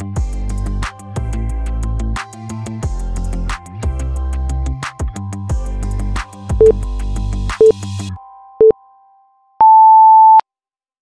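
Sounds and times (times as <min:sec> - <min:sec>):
longer higher beep: 0:09.6 - 0:10.4
short low beep: 0:09.6 - 0:10.4.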